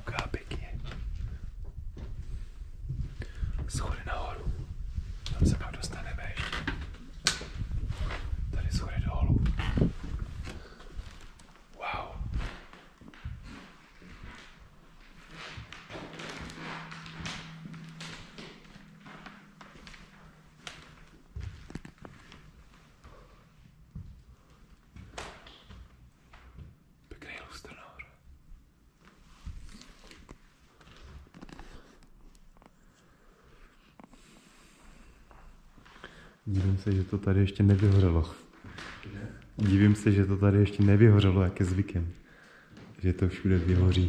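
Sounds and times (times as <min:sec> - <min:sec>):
faint whispering voices: 0:00.0 - 0:01.6, 0:03.0 - 0:07.1, 0:07.9 - 0:13.6, 0:27.0 - 0:28.3
footsteps on parquet floor: 0:12.3 - 0:23.2.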